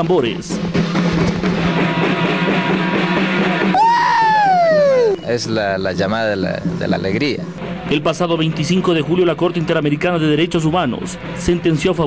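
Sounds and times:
high falling cry of joy: 3.7 - 5.3.

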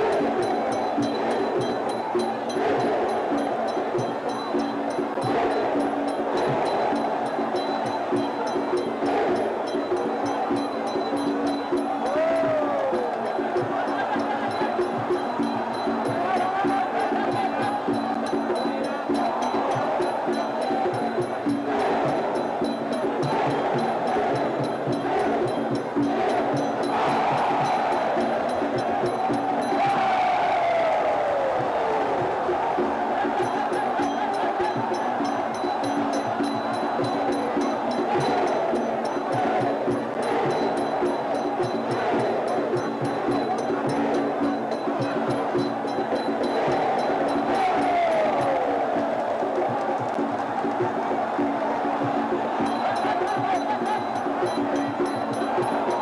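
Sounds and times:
steady percussion: 0.0 - 30.6, 31.2 - 56.0
crowd noise: 0.0 - 56.0.

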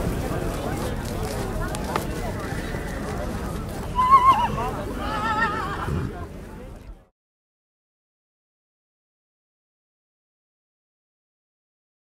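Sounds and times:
horse whinnying: 3.9 - 6.1.

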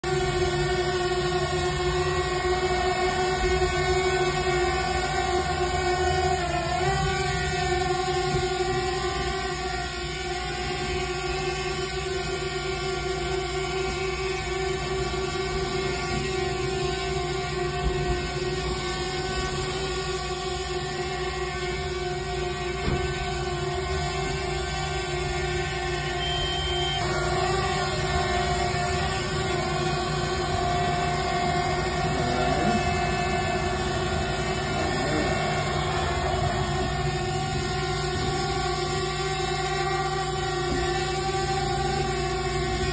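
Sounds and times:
drone propellers whining: 0.0 - 42.9.

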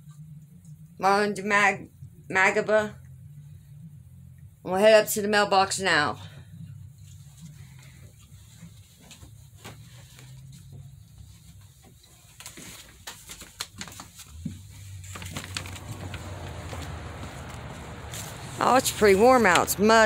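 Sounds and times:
steady low hum: 0.0 - 12.9, 13.8 - 20.0
outdoor air hiss: 14.6 - 20.0.

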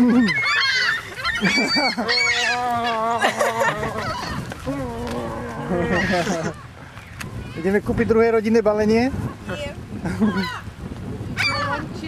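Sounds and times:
gulls calling: 0.0 - 8.0, 9.2 - 12.0.

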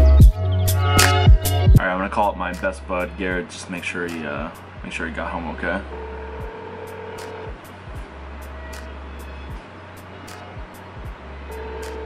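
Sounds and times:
background music with steady beat: 0.0 - 12.0
telephone ringback tone: 5.8 - 7.6, 11.5 - 12.0.

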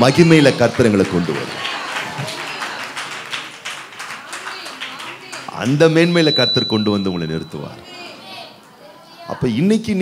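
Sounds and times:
hand clapping: 0.6 - 5.6.

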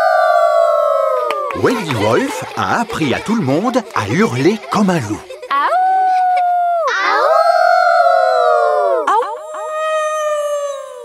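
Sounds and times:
single long howl: 0.0 - 1.6, 5.8 - 11.0
cartoon children howling like wolves: 0.0 - 3.4, 5.4 - 11.0.

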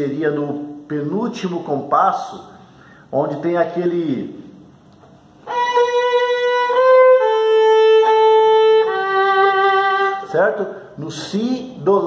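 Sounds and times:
solo violin playing hymn: 5.4 - 10.4.

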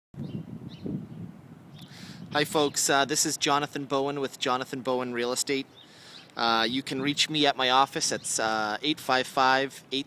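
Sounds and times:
faint bird chirps: 5.6 - 6.4.

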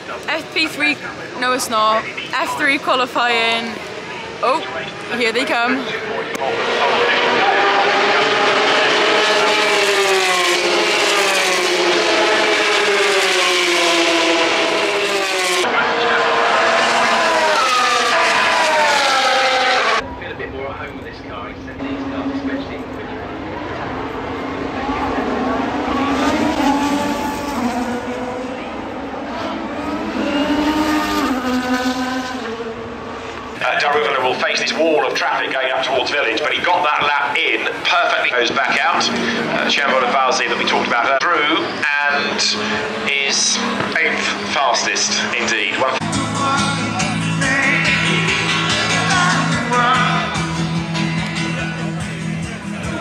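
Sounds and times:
racing cars passing at high revs: 0.0 - 20.0, 21.6 - 53.0.

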